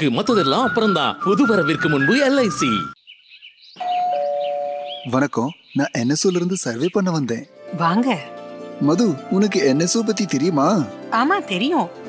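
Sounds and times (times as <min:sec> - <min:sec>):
doorbell ding-dong chime: 0:03.8 - 0:05.0.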